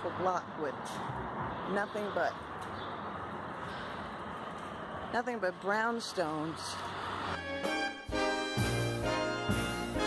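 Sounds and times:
traffic hum: 0.0s - 10.0s.

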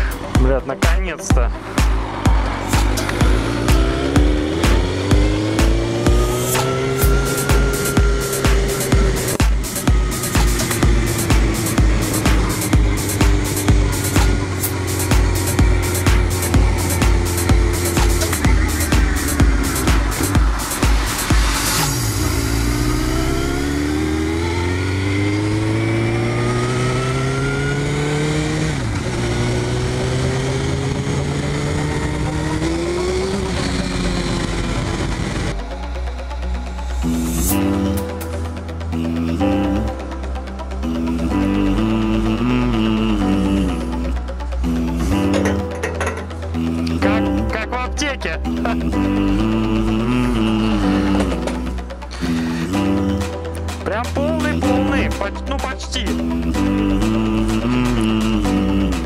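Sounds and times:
music with steady beat: 0.0s - 23.5s, 35.3s - 59.0s
motorcycle engine revving: 0.0s - 47.7s, 48.4s - 55.4s, 56.0s - 59.0s.

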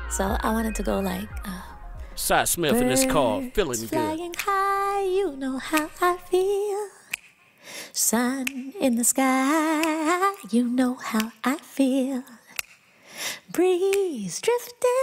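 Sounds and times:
woman singing unaccompanied: 0.0s - 7.2s, 7.9s - 12.6s, 13.4s - 15.0s.

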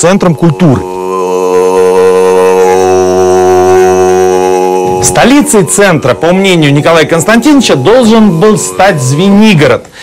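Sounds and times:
low droning note: 0.3s - 9.3s.

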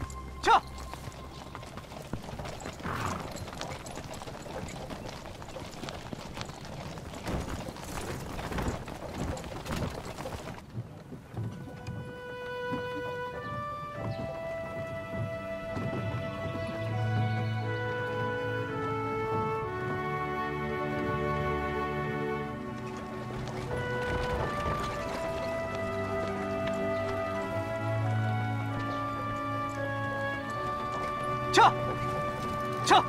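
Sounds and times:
horse hooves clip-clopping: 0.0s - 33.0s
wooden wagon rolling on gravel: 0.0s - 33.0s
music of held notes: 11.3s - 33.0s.

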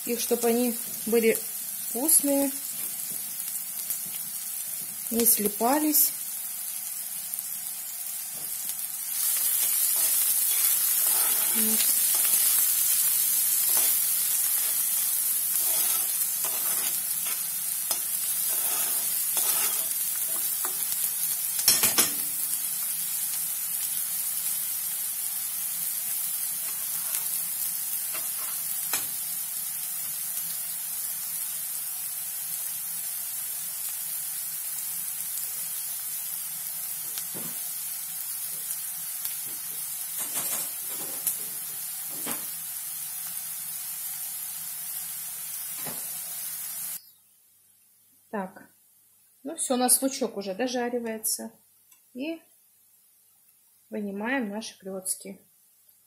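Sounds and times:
onion sizzling in oil: 0.0s - 47.2s
spoon scraping a pan: 9.2s - 12.7s, 13.5s - 21.0s, 26.6s - 27.4s, 28.1s - 29.1s, 40.2s - 41.3s.

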